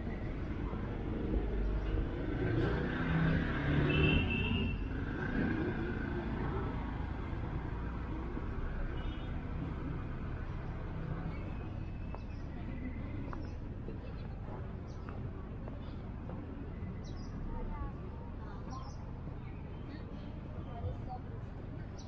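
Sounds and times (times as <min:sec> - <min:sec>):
distant road traffic rumble: 0:00.0 - 0:22.0.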